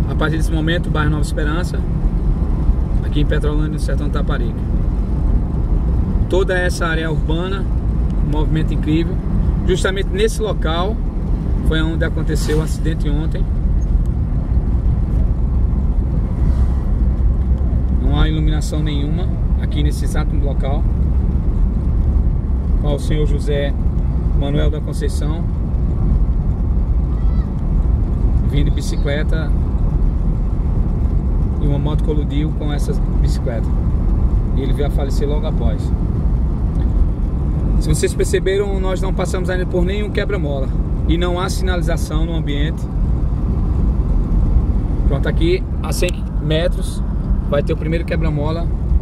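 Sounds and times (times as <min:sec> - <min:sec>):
car engine and tyre noise: 0:00.0 - 0:49.0.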